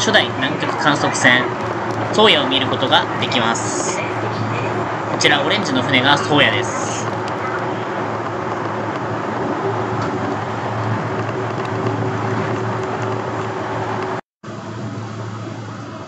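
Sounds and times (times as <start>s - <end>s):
train running noise with low hum: 0.0s - 16.0s.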